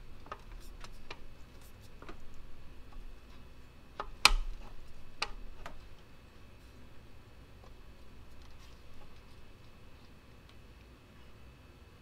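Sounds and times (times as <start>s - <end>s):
radiator shroud clicks and knocks: 4.0s - 5.9s.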